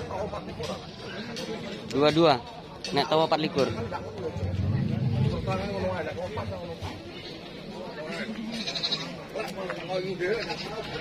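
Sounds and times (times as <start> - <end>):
people talking: 0.0 - 11.0
goat bleating: 8.4 - 9.3, 10.3 - 11.0.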